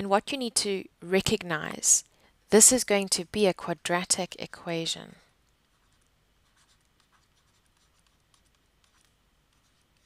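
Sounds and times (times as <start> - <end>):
stylus scratching on tablet: 4.0 - 10.0.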